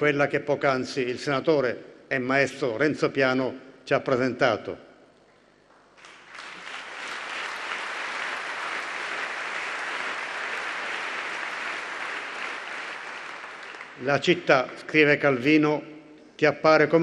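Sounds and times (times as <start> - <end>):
audience applauding: 6.0 - 14.3.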